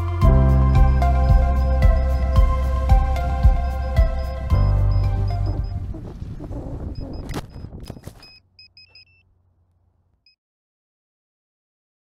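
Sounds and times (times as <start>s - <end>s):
music: 0.0s - 6.0s
high electronic beeps: 0.5s - 6.1s, 6.9s - 9.2s.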